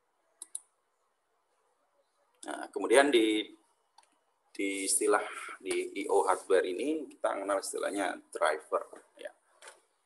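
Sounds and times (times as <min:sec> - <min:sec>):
computer mouse clicks: 0:00.4 - 0:00.7, 0:03.9 - 0:04.2.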